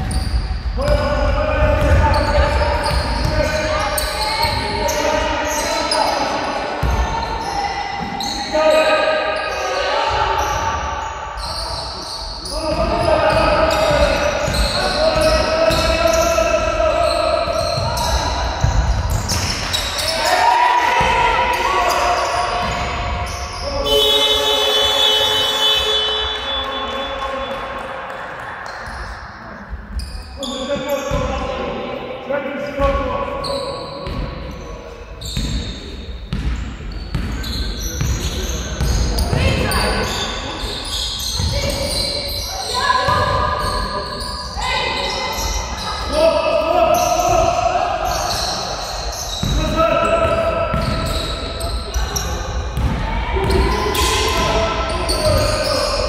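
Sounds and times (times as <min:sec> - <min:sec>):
basketball bouncing on wooden court: 0:00.0 - 0:04.8, 0:17.5 - 0:20.1, 0:35.3 - 0:35.7, 0:36.3 - 0:40.1, 0:41.2 - 0:42.1, 0:43.0 - 0:43.8, 0:49.3 - 0:55.8
people shouting: 0:20.0 - 0:22.4, 0:52.9 - 0:56.0.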